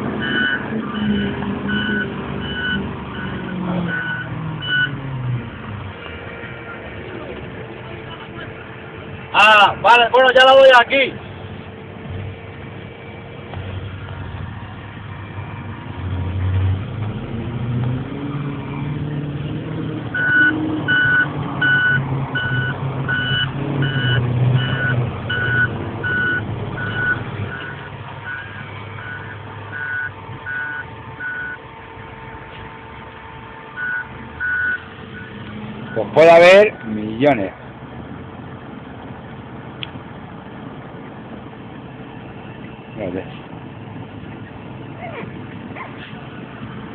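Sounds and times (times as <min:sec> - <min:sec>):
truck engine running under load: 0:00.0 - 0:09.9, 0:11.1 - 0:46.9
reversing alarm beeping: 0:00.2 - 0:05.0, 0:20.1 - 0:31.6, 0:33.8 - 0:36.9.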